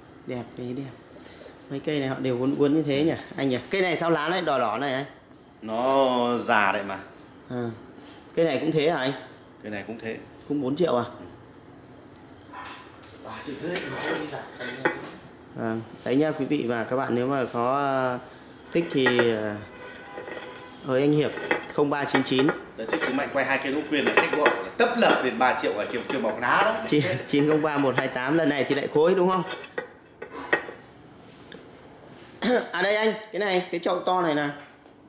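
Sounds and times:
ceramic pot clinking: 13.5s - 15.1s, 18.7s - 30.8s.

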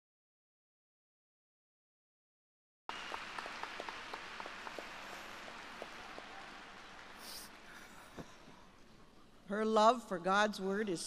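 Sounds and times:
audience applause: 2.9s - 8.2s.

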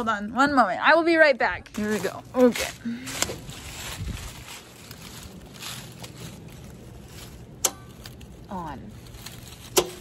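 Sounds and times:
wind rumble on microphone: 3.3s - 5.7s.

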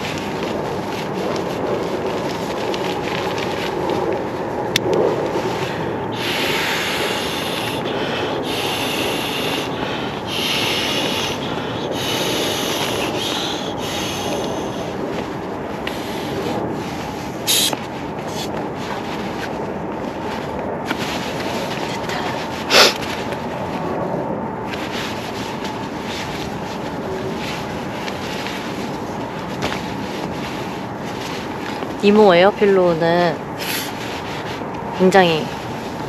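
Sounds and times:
nylon fabric rustling: 0.0s - 5.8s, 14.4s - 36.0s
short hissing bursts: 6.2s - 7.8s, 8.4s - 14.9s, 17.5s - 18.5s, 33.6s - 34.0s.

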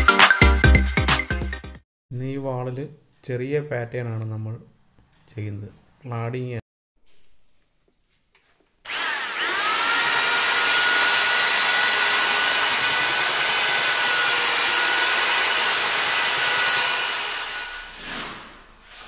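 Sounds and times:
electric drill mixing plaster: 8.8s - 18.3s.

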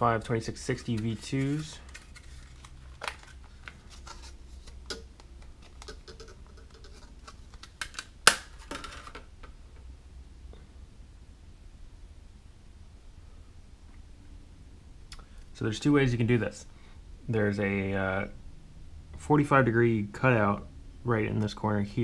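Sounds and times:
faint handling sounds: 0.2s - 9.9s
plastic case crackling clicks: 7.2s - 9.2s.

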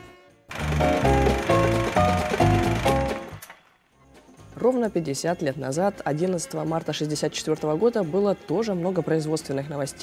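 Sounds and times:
musical jingle with loud chords: 0.5s - 3.4s.

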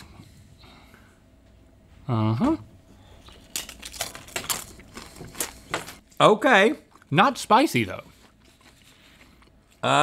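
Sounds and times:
tortilla chip crunching: 3.2s - 5.7s.

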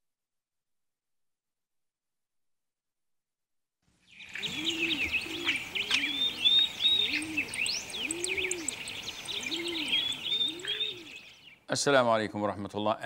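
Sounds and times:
small birds chirping and trilling: 4.0s - 13.0s
dove cooing: 4.2s - 11.3s.

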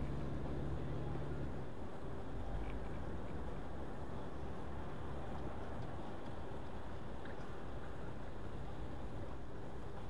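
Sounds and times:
road and engine rumble in cabin: 0.0s - 10.0s.

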